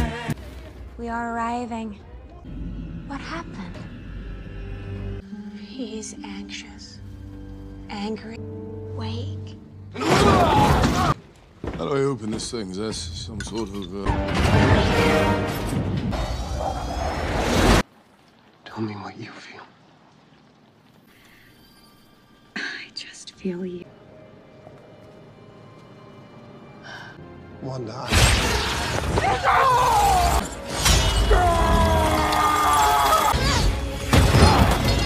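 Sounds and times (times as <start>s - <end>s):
glass shattering: 30.0s - 31.6s.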